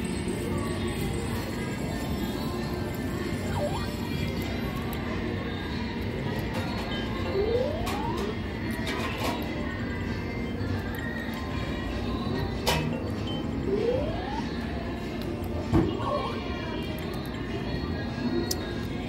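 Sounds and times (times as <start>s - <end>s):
slot machine music and jingles: 0.0s - 4.7s, 6.5s - 8.5s, 12.6s - 14.5s
rising electronic tone: 13.6s - 14.5s.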